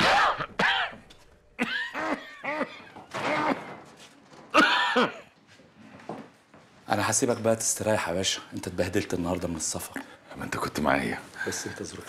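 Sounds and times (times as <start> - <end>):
man coughing hard: 0.0 - 1.0, 1.6 - 3.8, 4.5 - 5.4.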